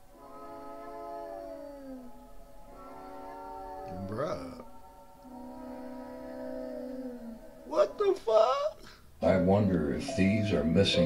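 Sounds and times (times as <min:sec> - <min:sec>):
wailing cries: 0:00.2 - 0:04.6, 0:05.2 - 0:08.2.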